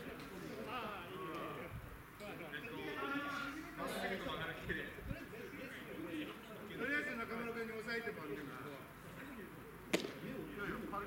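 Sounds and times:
faint voices of players: 0.0s - 11.0s
baseball popping into leather mitt: 9.9s - 10.2s.

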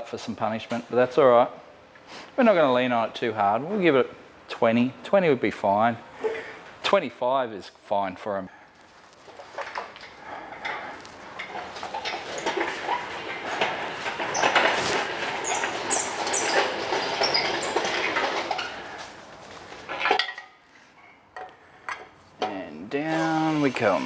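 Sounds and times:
crane chains clanking and rattling: 9.2s - 20.6s.

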